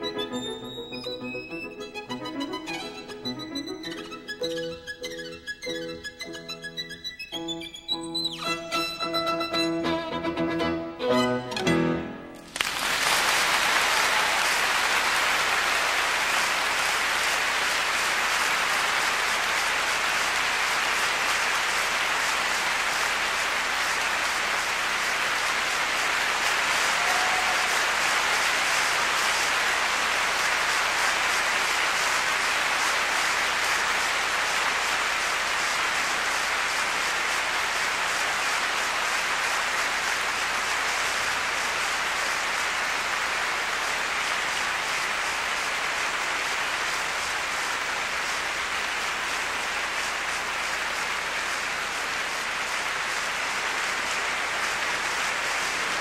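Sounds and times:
audience applauding: 0.0s - 5.2s, 12.4s - 56.0s.

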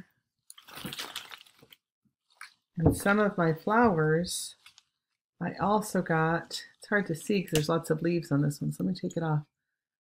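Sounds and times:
leaves rustling and crackling: 0.6s - 2.5s.

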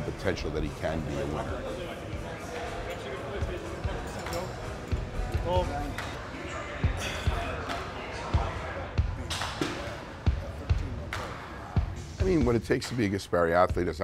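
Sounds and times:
faint voices: 0.0s - 12.1s.

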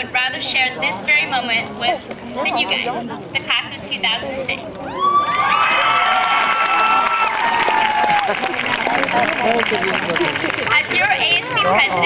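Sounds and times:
crowd cheering: 4.8s - 12.0s
dense clapping: 5.3s - 10.8s.

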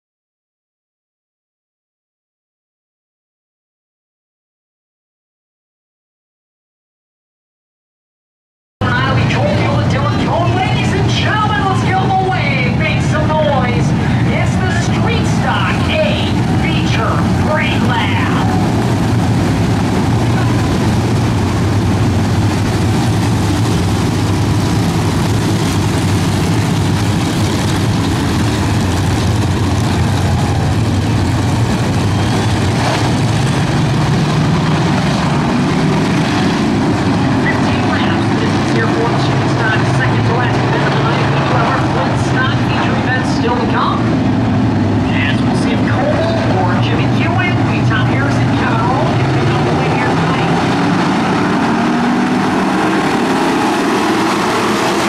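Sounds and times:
race car engines droning: 8.8s - 55.0s.

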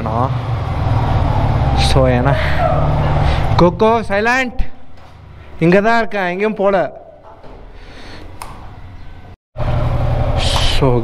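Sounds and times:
click: 8.2s - 8.6s.

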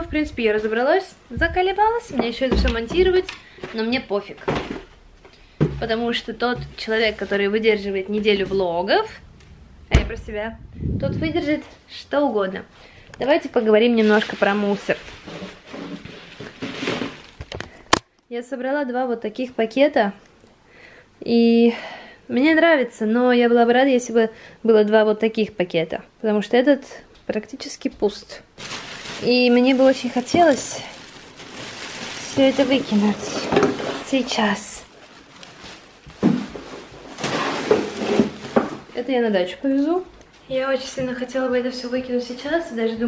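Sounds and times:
plastic bags rustling: 5.8s - 9.1s, 13.8s - 17.8s, 28.5s - 39.0s.

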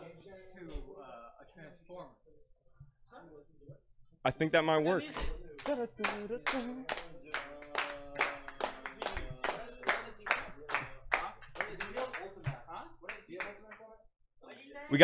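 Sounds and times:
group clapping in rhythm: 5.5s - 14.0s.

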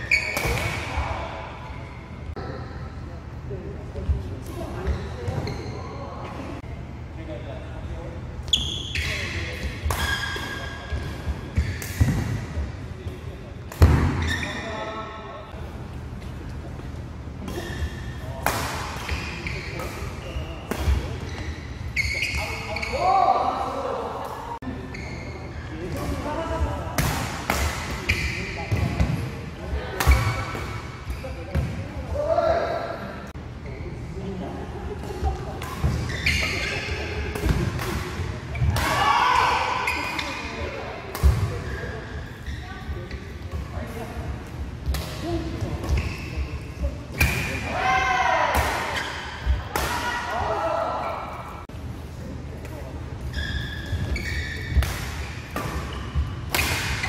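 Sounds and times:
players' voices: 0.0s - 57.0s
racket hitting shuttlecock: 54.6s - 57.0s.

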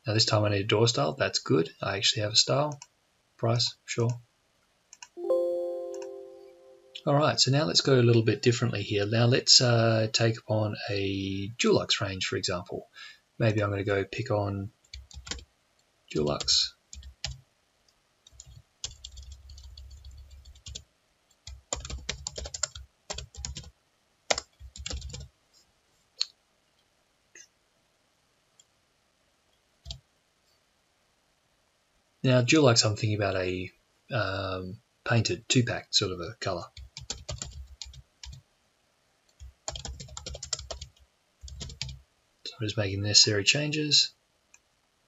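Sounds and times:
computer keyboard typing: 14.9s - 15.4s, 16.3s - 17.4s, 18.3s - 20.8s, 21.4s - 23.7s, 24.3s - 25.3s, 36.8s - 38.4s, 39.3s - 42.0s.

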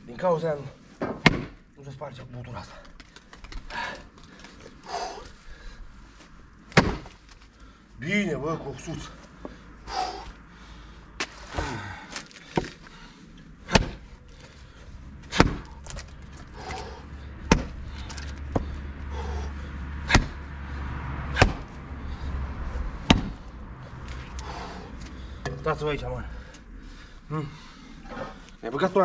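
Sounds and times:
axe chopping wooden stump: 1.0s - 1.6s, 6.7s - 7.2s, 13.7s - 14.1s, 15.2s - 18.8s, 20.0s - 20.4s, 21.3s - 21.8s, 23.0s - 23.4s.

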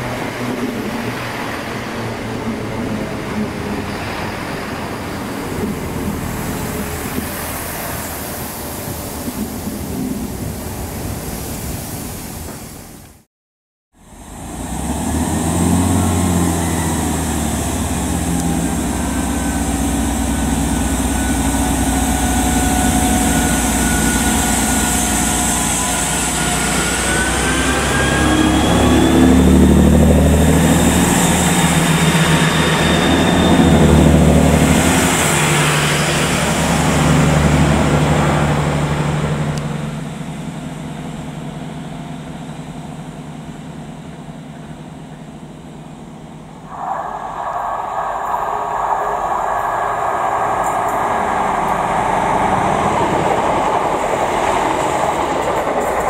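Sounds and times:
diesel train engines: 0.0s - 13.2s, 14.0s - 56.0s.

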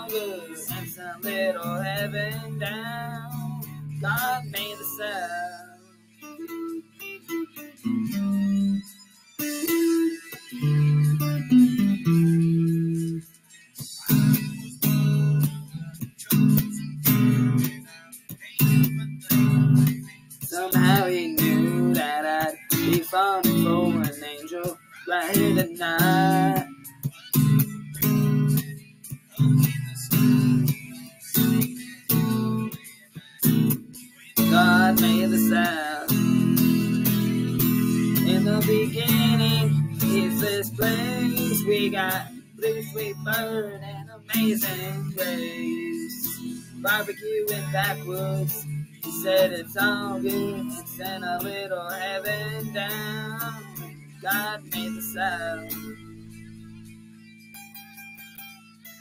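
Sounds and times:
electric guitar strumming chords: 0.0s - 59.0s
pitch-bending guitar melody: 0.0s - 59.0s.

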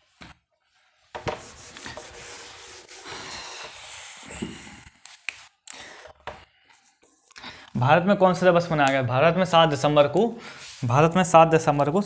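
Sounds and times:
scratchy rubbing: 1.3s - 4.3s.

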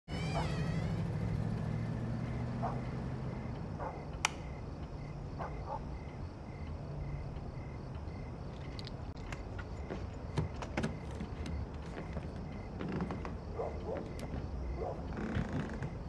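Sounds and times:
cricket chirping: 0.2s - 16.0s.

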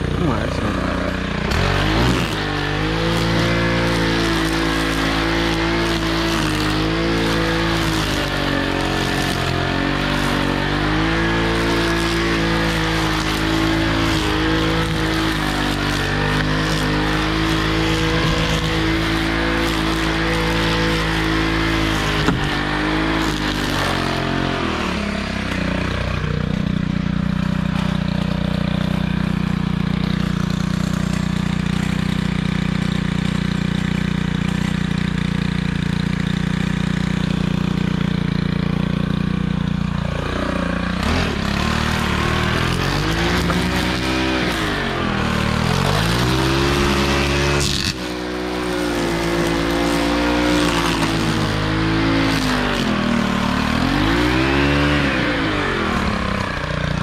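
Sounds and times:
string trimmer engine revving: 0.0s - 57.0s.

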